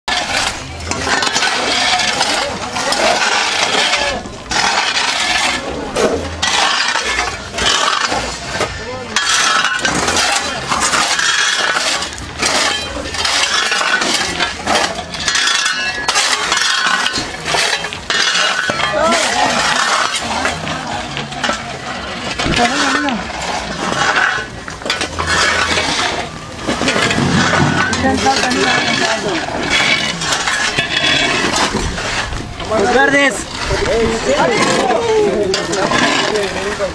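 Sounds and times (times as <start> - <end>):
metal hoes scraping gravel on concrete: 0.1 - 36.9.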